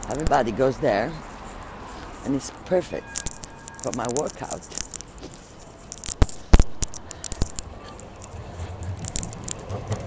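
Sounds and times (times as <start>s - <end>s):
phone handling clicks and rubs: 3.2s - 10.0s.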